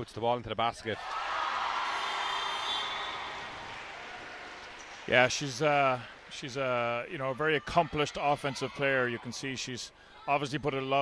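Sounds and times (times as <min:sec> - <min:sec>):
crowd cheering and applauding: 0:01.0 - 0:06.5.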